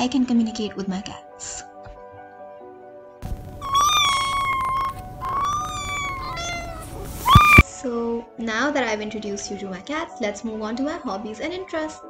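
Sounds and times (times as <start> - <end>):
cat meowing: 3.3 - 7.6.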